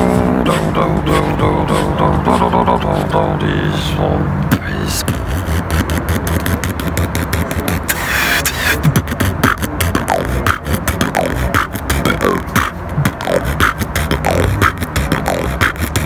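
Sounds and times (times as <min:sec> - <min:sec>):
person beatboxing: 0:00.0 - 0:16.0.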